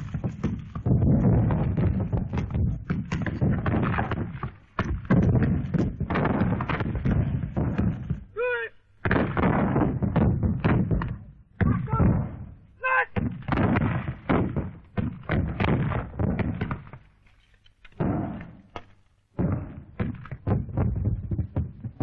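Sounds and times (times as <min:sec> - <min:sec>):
gunshots and shell bursts: 0:00.0 - 0:08.3
brief cry: 0:08.4 - 0:08.8.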